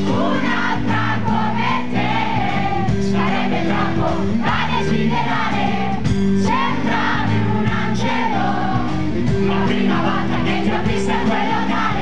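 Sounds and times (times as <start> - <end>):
live rock band playing: 0.0 - 12.0
male lead vocals: 9.2 - 12.0.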